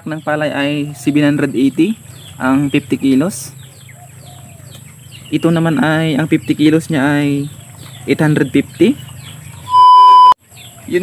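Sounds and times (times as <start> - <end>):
loud electronic beep: 9.7 - 10.4.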